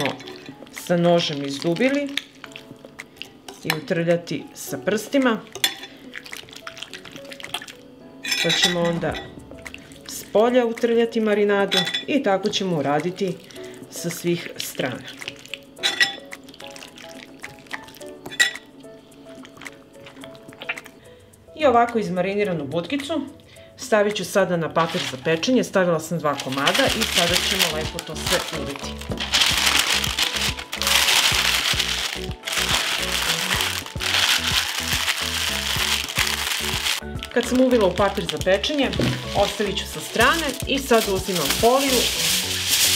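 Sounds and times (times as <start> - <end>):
soft background music: 0.0 - 42.9
baking paper crinkling: 24.8 - 25.5, 26.3 - 42.9
person speaking: 26.2 - 42.4
hands squelching marinade into meat: 26.4 - 38.5.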